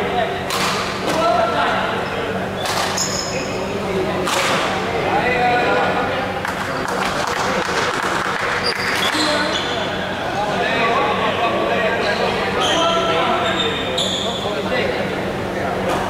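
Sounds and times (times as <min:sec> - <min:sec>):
indistinct chatter: 0:00.0 - 0:16.0
shoes squeaking on floor: 0:02.9 - 0:03.6, 0:08.6 - 0:10.0, 0:12.1 - 0:14.5.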